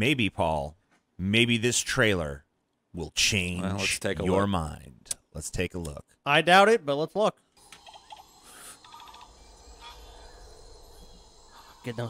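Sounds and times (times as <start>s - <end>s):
faint high calls: 8.0s - 12.0s.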